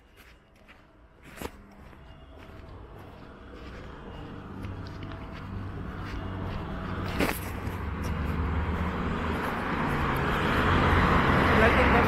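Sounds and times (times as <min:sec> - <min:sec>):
vehicle engine hum: 0:00.0 - 0:12.0
tyre noise: 0:04.6 - 0:11.4.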